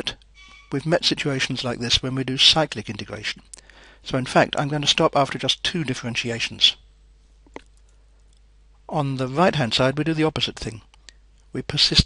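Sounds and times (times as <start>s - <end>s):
man speaking: 0.0s - 6.8s, 8.9s - 10.9s, 11.5s - 12.0s
faint steady hum: 0.0s - 12.0s.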